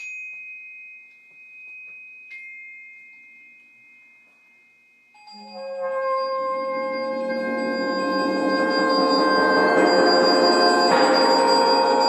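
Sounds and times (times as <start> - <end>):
glockenspiel notes ringing: 0.0 - 12.0.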